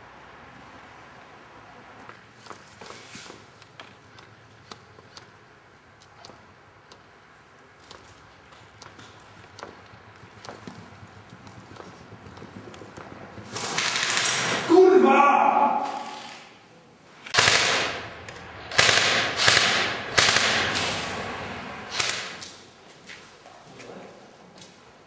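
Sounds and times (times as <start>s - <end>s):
sharp clicks and knocks: 3.6s - 5.4s, 6.0s - 7.1s, 7.8s - 14.5s
airsoft rifle automatic fire: 13.4s - 14.7s, 17.3s - 21.3s, 21.9s - 22.4s.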